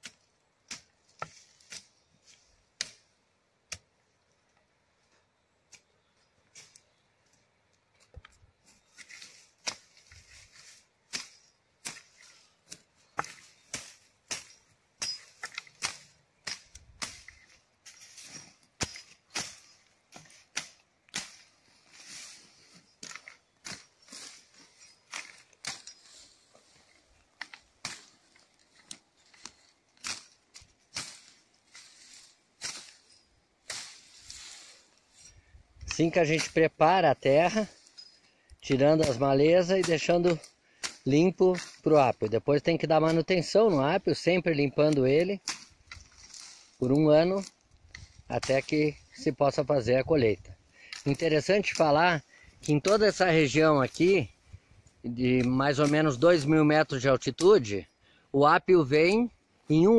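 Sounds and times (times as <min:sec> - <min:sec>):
machete chopping brush: 0:00.0 - 0:03.1, 0:08.8 - 0:34.8, 0:36.0 - 0:36.6, 0:38.7 - 0:42.2, 0:44.8 - 0:49.4, 0:55.4 - 0:56.6
stems snapping and rustling: 0:00.0 - 0:03.1, 0:05.7 - 0:54.4, 0:55.1 - 0:57.6.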